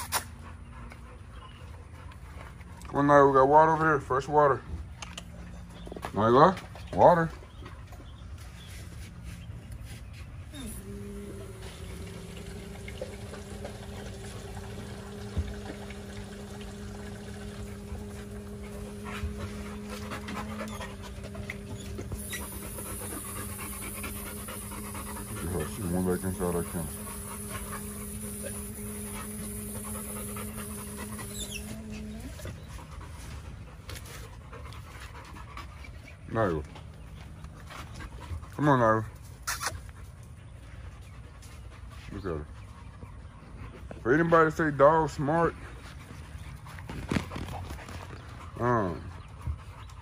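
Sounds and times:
dogs panting: 0.0 - 50.0
dog whine: 10.5 - 32.8
garden hose running: 10.5 - 35.1
water splashing hiss: 10.6 - 20.6.

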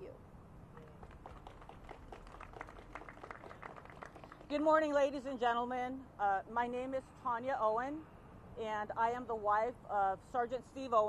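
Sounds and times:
faint scattered applause: 0.8 - 4.6.

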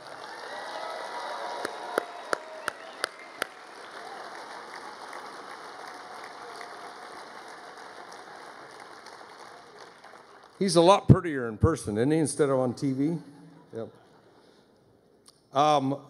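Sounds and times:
crowd applauding: 0.0 - 11.1
loud single claps near microphone: 1.5 - 10.6.

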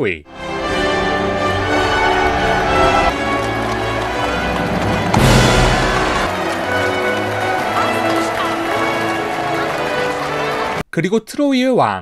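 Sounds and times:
background score music: 0.3 - 10.8
man speaking: 10.9 - 12.0.

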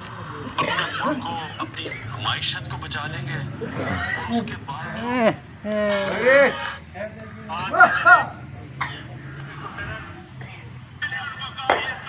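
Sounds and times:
harsh cough: 0.6 - 2.2, 3.6 - 4.6, 8.8 - 9.2, 10.4 - 10.7
man's voice: 0.6 - 8.4, 11.0 - 12.0.

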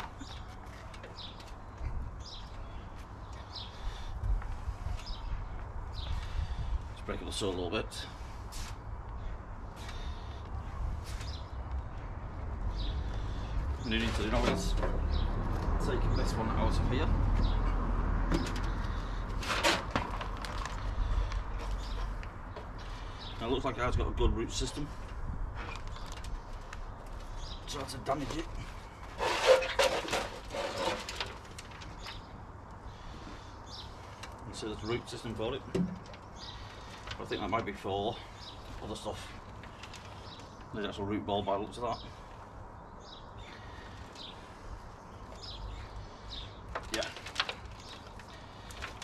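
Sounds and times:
wind rumbling on microphone: 1.2 - 7.2, 8.8 - 27.6
soil rustling and scraping: 13.8 - 16.4, 18.6 - 22.2, 25.6 - 32.3.

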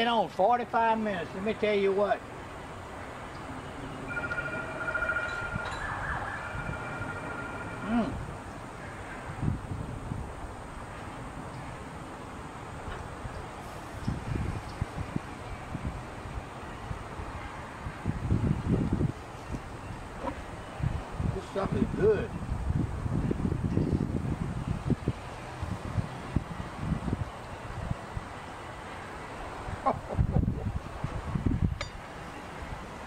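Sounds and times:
distant siren: 3.5 - 9.4.

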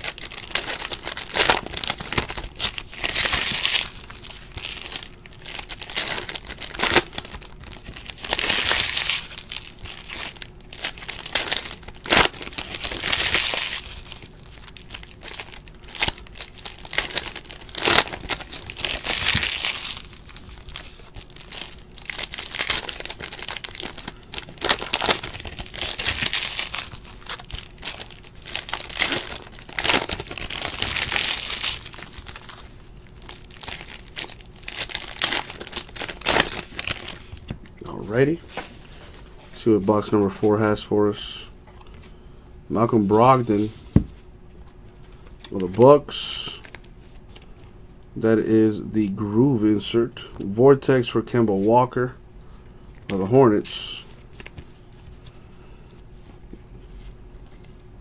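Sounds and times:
foil wrappers crinkling: 0.0 - 40.1, 45.0 - 47.7, 53.0 - 55.4.

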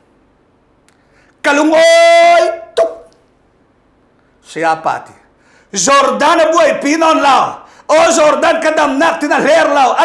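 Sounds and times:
man shouting a long vowel: 1.5 - 3.1.

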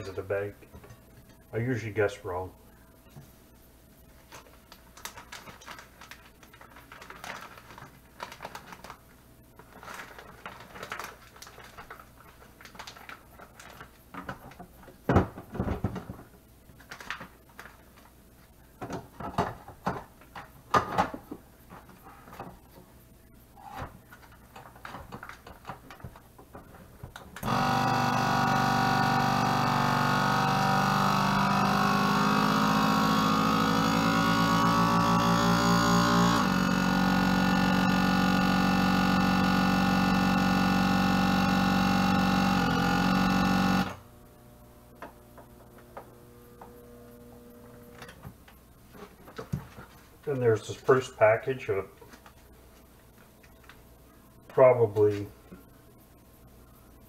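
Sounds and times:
vacuum sealer pump humming: 27.4 - 49.8.

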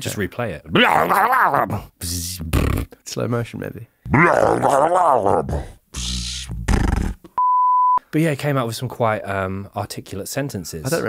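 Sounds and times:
man growling impression: 0.7 - 3.0, 4.1 - 7.3
high-pitched bleep: 7.4 - 8.0.

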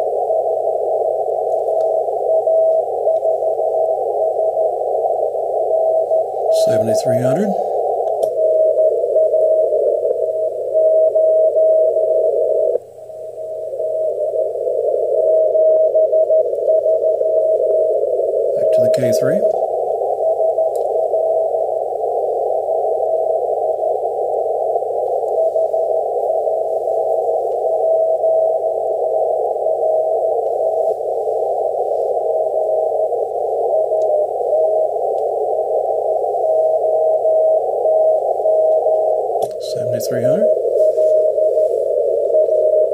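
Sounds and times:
radio static hiss: 0.0 - 42.9
person speaking word: 39.6 - 40.6.

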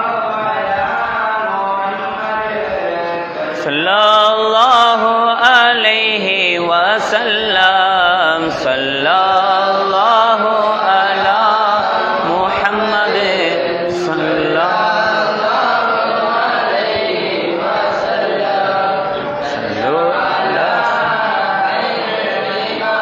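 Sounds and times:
men chanting: 0.0 - 23.0.

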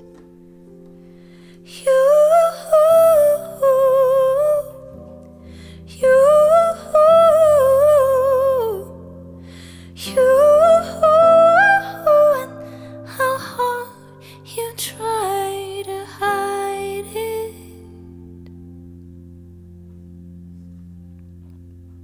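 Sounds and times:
digital piano chords: 0.0 - 22.0.

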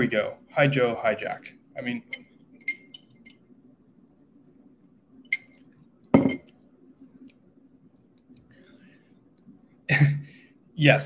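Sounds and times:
room fan humming: 0.0 - 11.0
drinking glass clinking: 2.1 - 3.4, 5.3 - 6.5.

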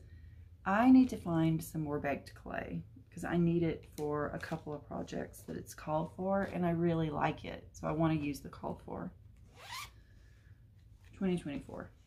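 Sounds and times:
zipper pulled: 9.4 - 10.0.

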